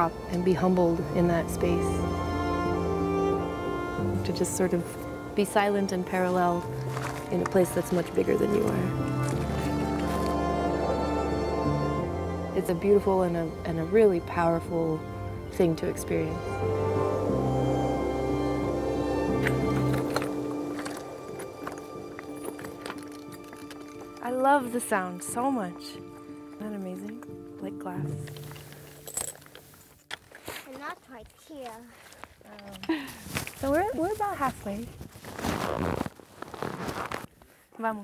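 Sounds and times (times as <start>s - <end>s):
background music: 0.0s - 30.2s
nylon fabric rustling: 6.2s - 11.3s, 33.2s - 38.0s
footsteps on loose rocks: 6.4s - 10.5s, 19.4s - 24.4s, 28.2s - 37.3s.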